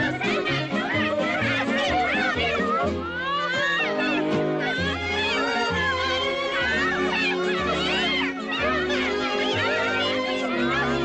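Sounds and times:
orchestral cartoon music: 0.0s - 11.0s.

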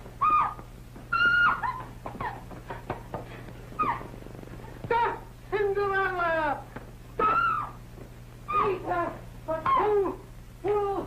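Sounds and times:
high-pitched yelping cries: 0.2s - 2.4s, 3.8s - 4.1s, 7.2s - 7.8s, 8.5s - 8.8s.

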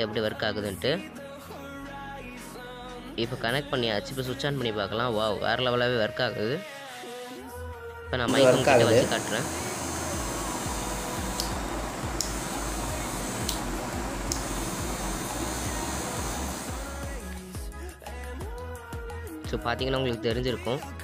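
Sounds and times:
music with a voice: 0.0s - 21.0s
small electric drill motor running: 8.3s - 17.0s
faint clicks: 11.3s - 11.6s, 13.4s - 14.5s.

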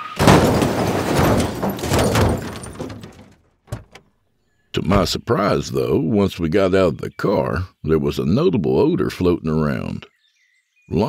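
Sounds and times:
car crashing into garbage cans: 0.0s - 4.0s
car doors thudding: 0.1s - 4.0s, 4.9s - 5.2s
clatter of knocks: 0.1s - 4.0s.

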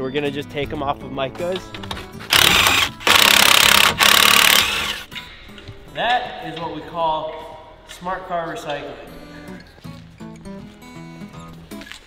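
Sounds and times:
impact wrench rattling: 2.3s - 5.1s.

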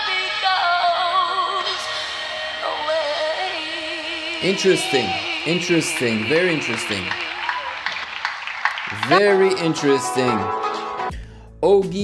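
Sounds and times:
audience applauding: 4.4s - 10.5s.

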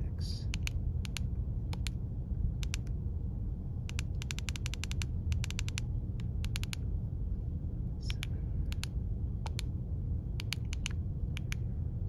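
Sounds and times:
steady low rumble: 0.0s - 12.0s
radio keypad buttons clicking: 3.9s - 6.8s, 10.4s - 11.6s.

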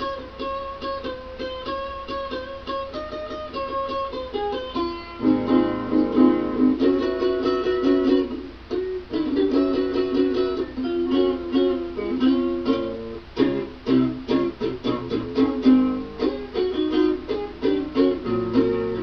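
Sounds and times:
plucked acoustic string instrument: 0.0s - 19.0s.

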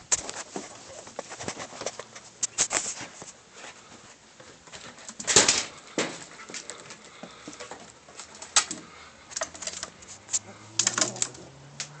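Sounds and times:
squirrel crunching food: 4.3s - 12.0s.

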